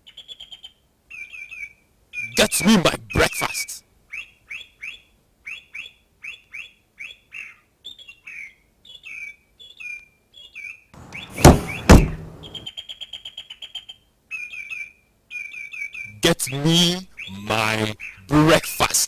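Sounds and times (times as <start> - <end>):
birds chirping: 0.0 - 19.0
loud bangs: 11.0 - 12.6.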